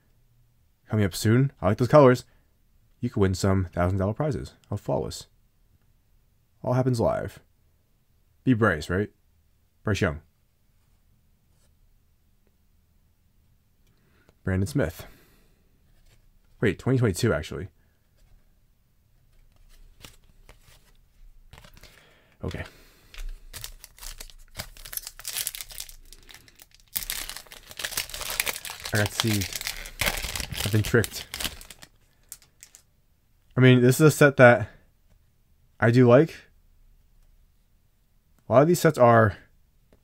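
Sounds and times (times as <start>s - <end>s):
trading cards handled: 19.2s - 32.8s
foil wrapper crinkling: 21.5s - 32.8s.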